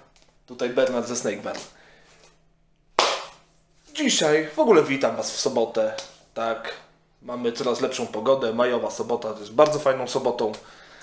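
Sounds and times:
sharp hand clap: 3.0s - 3.4s.

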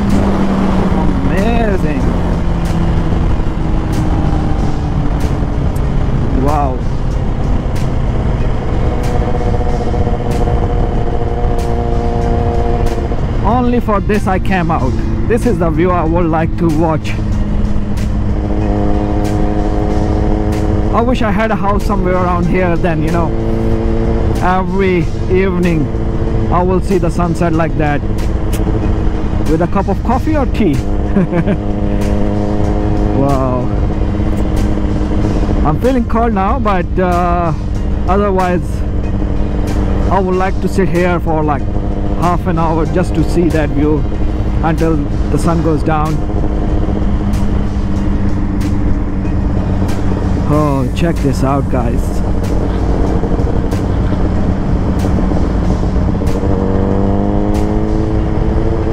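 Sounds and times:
motorcycle engine cruising: 0.0s - 58.9s.

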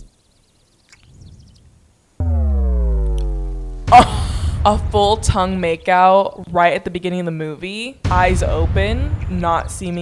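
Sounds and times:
synth bass note falling in pitch: 2.2s - 4.7s.

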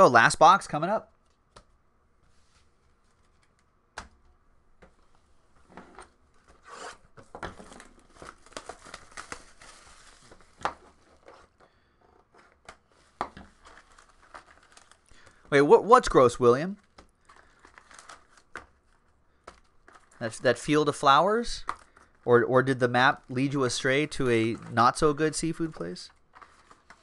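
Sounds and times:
cardboard and wrapping tearing: 6.5s - 11.3s, 13.4s - 15.1s, 16.8s - 20.2s.

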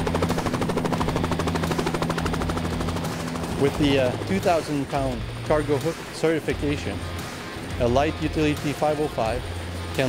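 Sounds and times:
helicopter rotor chopping: 0.0s - 10.0s
turbine hum: 0.0s - 10.0s.

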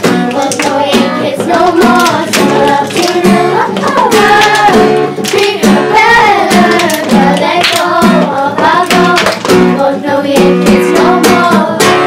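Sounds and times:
girls' choir singing: 0.0s - 12.0s
strummed acoustic guitar: 0.0s - 12.0s.

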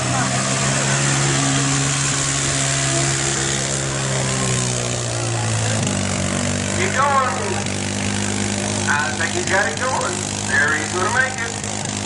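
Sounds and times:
atv engine revving: 0.0s - 12.0s.

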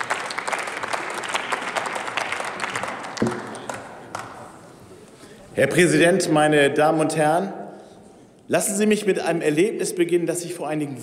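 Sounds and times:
people applauding: 0.0s - 4.6s.

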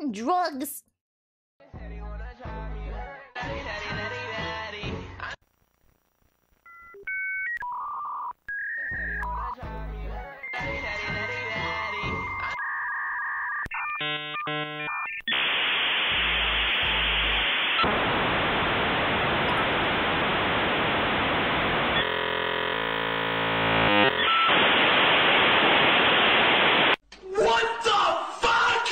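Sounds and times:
dial-up modem connecting: 10.4s - 27.0s.

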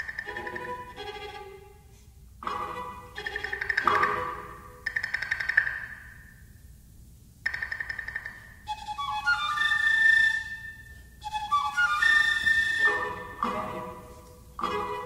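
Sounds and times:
soft chamber ensemble: 0.0s - 5.4s, 8.6s - 15.0s
flute playing held high notes: 8.7s - 14.3s.

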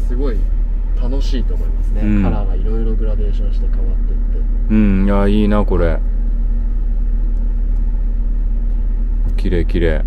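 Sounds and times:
diesel engine idling inside cabin: 0.0s - 10.0s.

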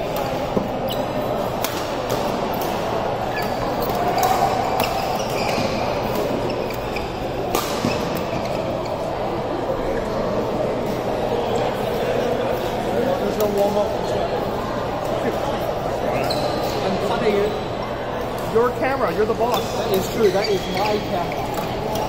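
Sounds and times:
sports hall background noise: 0.0s - 22.0s
badminton rackets hitting shuttlecock: 1.5s - 6.8s, 7.4s - 8.2s.

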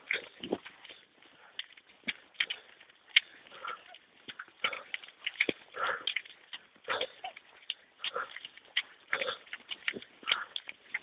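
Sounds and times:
running footsteps on wet pavement: 0.0s - 11.0s
rustling: 0.0s - 11.0s.

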